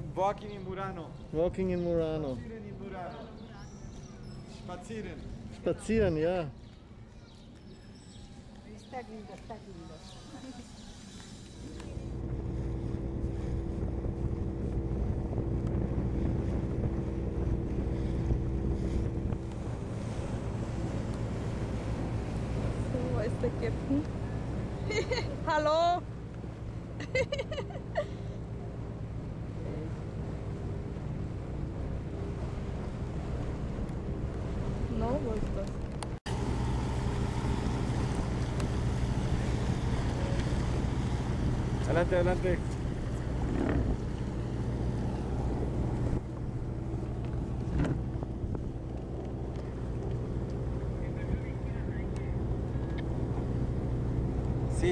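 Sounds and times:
boat engine droning: 7.8s - 54.9s
water rushing along hull: 9.1s - 54.9s
wind on microphone: 12.0s - 23.0s
wind buffeting microphone: 12.0s - 24.8s, 30.2s - 54.7s.

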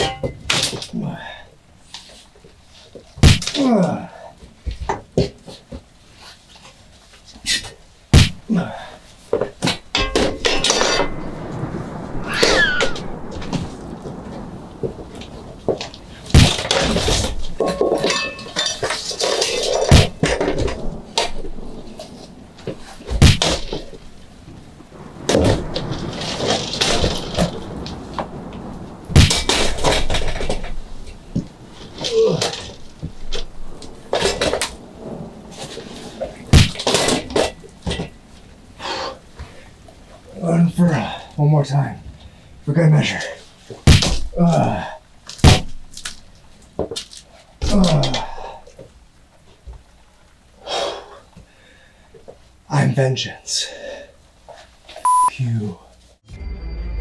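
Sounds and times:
dull thumps: 3.2s - 3.6s, 8.1s - 8.5s, 22.6s - 24.0s
thuds and crashes: 3.2s - 3.6s, 8.1s - 8.5s, 9.3s - 38.4s, 43.6s - 48.9s
cat yowling: 12.2s - 13.1s.

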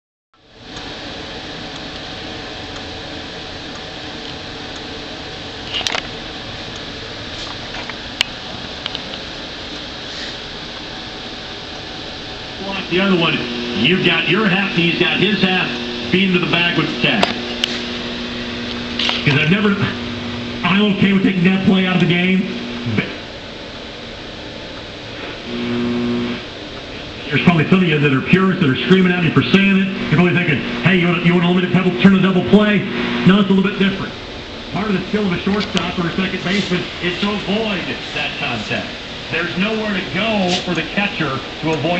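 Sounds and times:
radio speaker hiss and hum: 0.4s - 41.9s.

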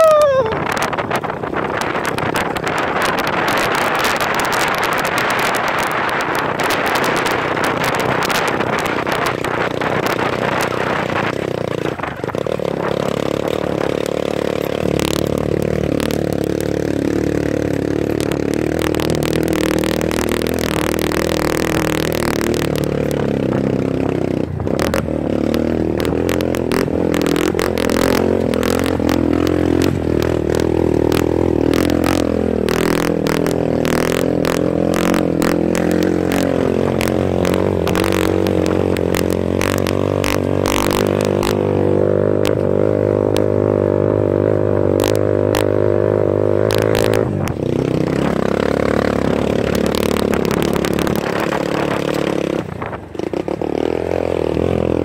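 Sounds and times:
bike knocking and rattling: 0.0s - 55.0s
motorcycle engine revving: 0.0s - 55.0s.

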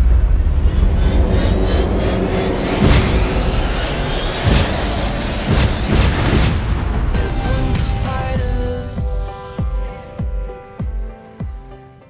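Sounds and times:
ocean wave roaring: 0.0s - 10.2s
heavy booming hits: 0.0s - 11.0s
dramatic trailer music: 0.0s - 12.0s.

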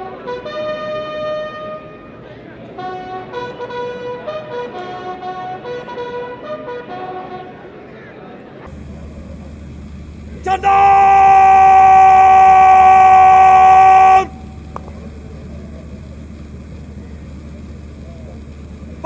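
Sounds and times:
brass fanfare: 0.0s - 2.1s, 2.8s - 7.6s
steady low hum: 8.7s - 19.0s.

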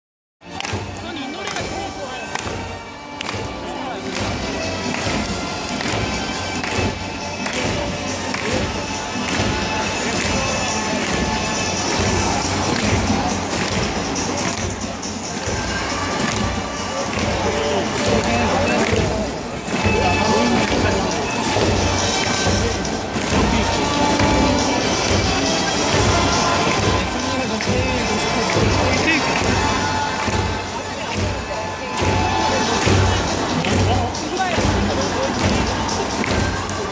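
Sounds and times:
large crowd voices: 0.4s - 36.9s
music over loudspeakers: 0.4s - 36.9s.

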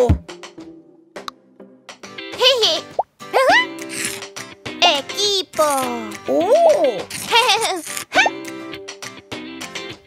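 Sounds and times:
light children's music: 0.0s - 10.0s.

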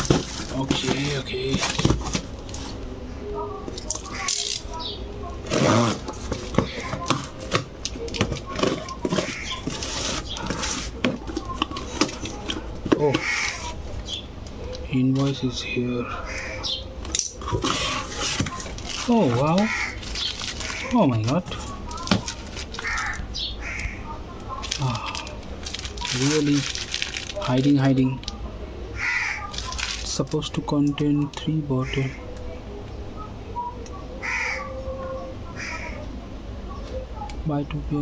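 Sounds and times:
paper wrapping rustling and crinkling: 0.0s - 2.9s, 5.4s - 13.8s, 17.4s - 23.2s, 24.5s - 28.2s, 29.0s - 30.8s
bird harsh calls: 6.6s - 7.3s, 8.7s - 10.8s, 13.0s - 14.4s, 16.1s - 22.1s, 22.7s - 24.2s, 28.9s - 29.8s, 34.2s - 34.9s, 35.5s - 36.1s.

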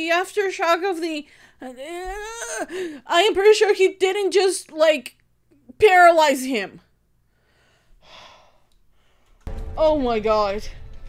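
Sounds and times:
person sighing: 2.2s - 3.0s, 8.0s - 8.7s.

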